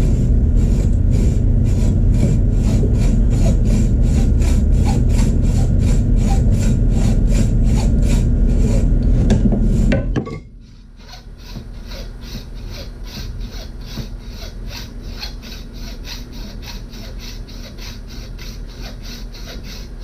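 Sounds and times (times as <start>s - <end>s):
hacksaw cutting wood: 0.0s - 10.0s, 11.0s - 20.0s
loud low rumble: 0.0s - 10.0s.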